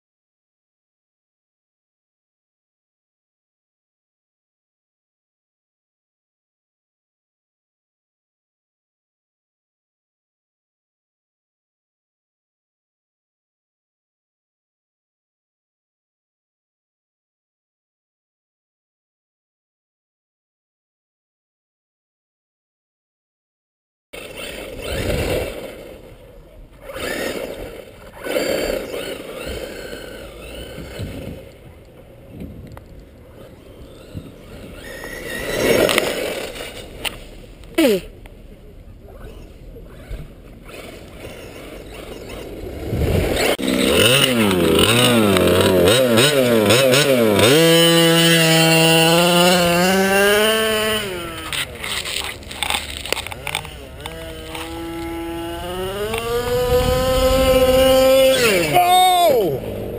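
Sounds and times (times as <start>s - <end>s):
rc buggy motor revving: 24.2s - 38.2s, 39.0s - 59.9s
tyre and drive noise on dirt: 24.2s - 59.9s.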